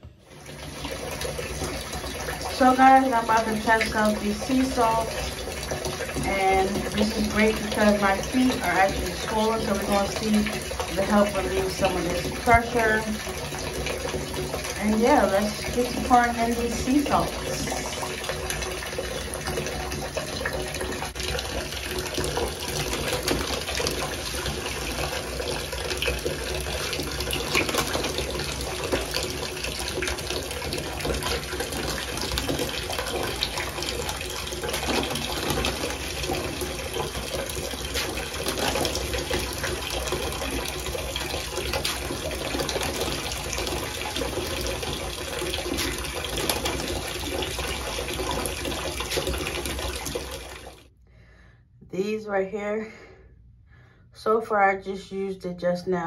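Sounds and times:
bathtub water splashing: 0.0s - 50.9s.

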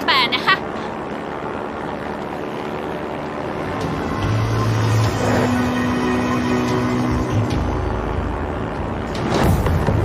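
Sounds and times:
aircraft engine drone in cabin: 0.0s - 10.0s.

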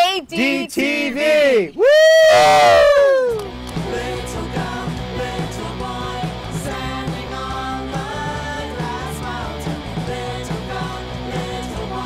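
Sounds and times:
rock music: 3.4s - 12.0s.

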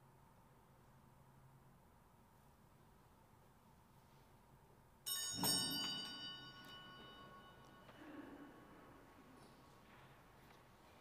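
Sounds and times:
bright many-toned bell ringing: 5.0s - 8.8s.

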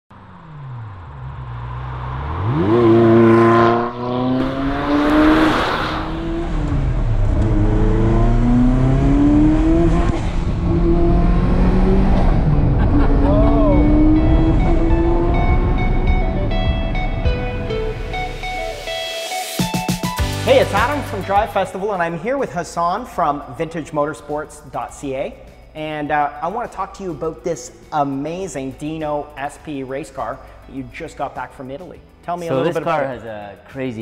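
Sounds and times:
sports car engine revving: 0.1s - 17.2s.

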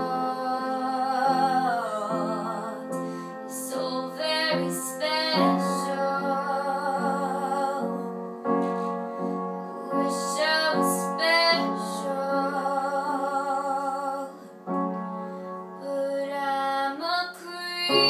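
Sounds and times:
keyboard chords with sliding melody: 0.0s - 16.8s.

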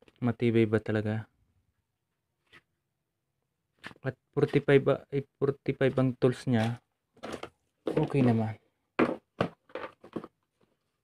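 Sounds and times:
knocks on plastic tool case: 9.0s - 10.3s.

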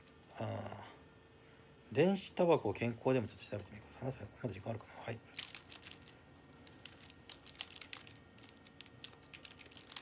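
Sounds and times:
fingers typing on smartphone: 5.4s - 10.0s.

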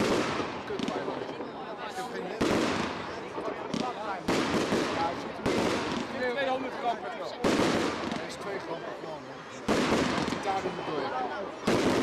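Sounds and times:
firework bangs: 0.0s - 1.5s, 2.2s - 6.4s, 7.4s - 8.6s, 9.6s - 10.8s, 11.6s - 12.0s.

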